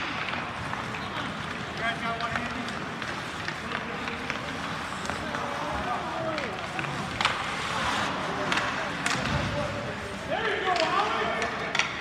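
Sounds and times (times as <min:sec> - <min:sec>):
sticks and puck clicking: 0:00.0 - 0:05.5, 0:06.2 - 0:07.5, 0:08.4 - 0:09.4, 0:10.7 - 0:12.0
skates scraping on ice: 0:00.0 - 0:12.0.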